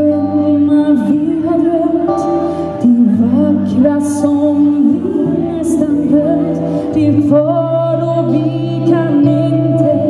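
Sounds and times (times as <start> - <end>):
live band playing a slow ballad: 0.0 - 10.0
woman singing lead: 0.0 - 10.0.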